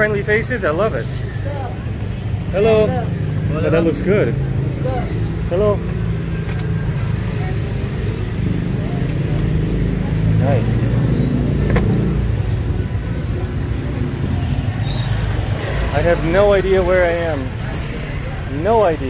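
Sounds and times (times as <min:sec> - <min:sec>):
faint voices: 0:00.0 - 0:19.0
motorcycle and scooter engines: 0:00.0 - 0:19.0.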